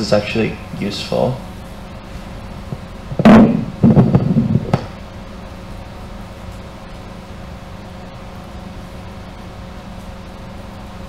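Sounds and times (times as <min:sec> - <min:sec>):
room hum: 0:00.0 - 0:11.0
microphone handling noise: 0:02.6 - 0:05.0
microphone knocking on table: 0:02.7 - 0:05.0.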